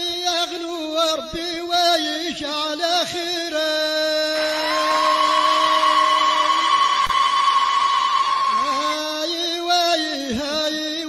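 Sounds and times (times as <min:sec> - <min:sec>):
man singing a long note: 0:00.0 - 0:06.7
crowd cheering and clapping: 0:04.4 - 0:09.4.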